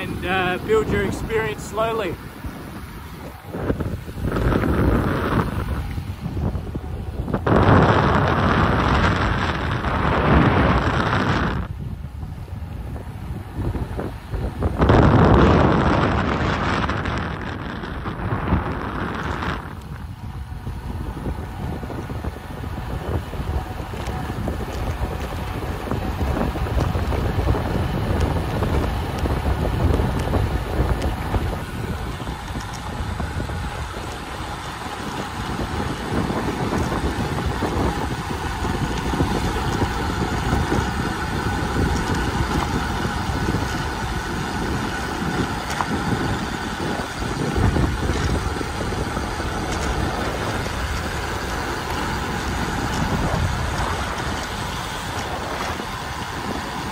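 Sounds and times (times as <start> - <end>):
bicycle tyre noise on road: 0.0 - 56.9
wind buffeting microphone: 0.0 - 56.9.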